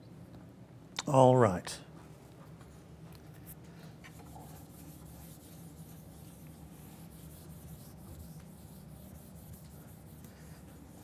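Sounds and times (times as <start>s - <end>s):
low room hum: 0.0s - 11.0s
eraser rubbing on whiteboard: 4.1s - 11.0s.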